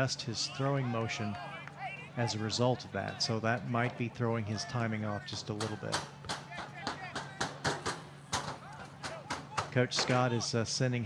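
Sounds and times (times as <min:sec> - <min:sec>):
faint shouting voices: 0:00.0 - 0:07.6, 0:08.2 - 0:10.5
sharp knocks and claps: 0:05.6 - 0:10.2.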